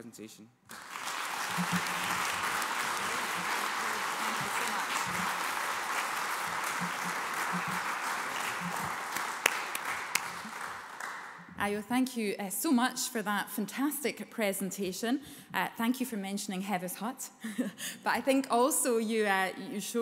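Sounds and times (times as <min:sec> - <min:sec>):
louder single claps: 0:00.7 - 0:11.4
audience applauding: 0:00.7 - 0:11.5.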